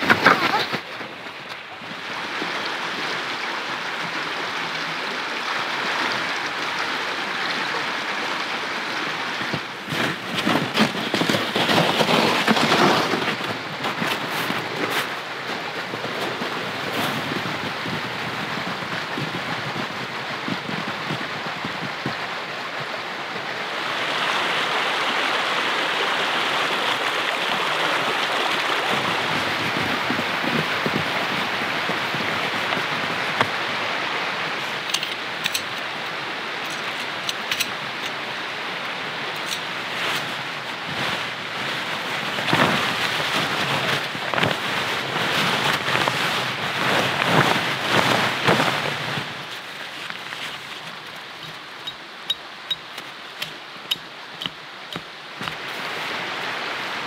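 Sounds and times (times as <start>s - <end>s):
mountain stream rushing: 0.0s - 57.0s
plastic sled dragged over snow: 0.0s - 57.0s
tent fabric rustling: 9.4s - 18.0s, 36.6s - 52.0s
footsteps crunching on snow: 9.8s - 15.2s, 42.4s - 51.6s.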